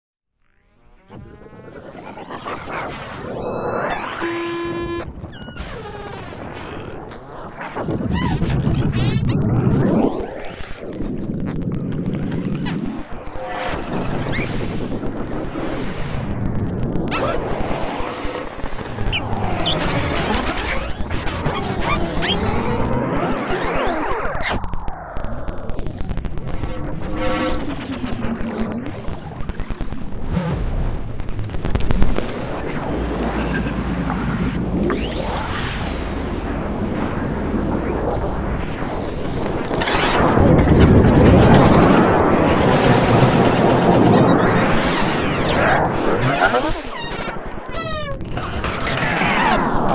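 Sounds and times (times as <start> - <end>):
buzzy synth tones: 0.7 - 8.8, 18.1 - 24.3, 25.4 - 46.9
sharp loud synth burst: 1.5 - 5.3, 29.5 - 46.0
low rumble: 24.8 - 46.1.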